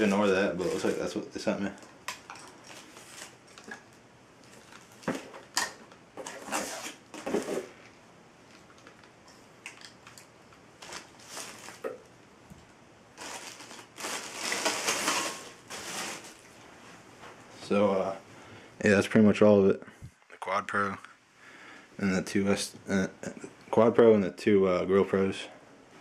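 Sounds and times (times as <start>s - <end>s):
plastic packaging rustling: 0.0s - 9.1s, 9.7s - 12.1s, 13.1s - 16.6s.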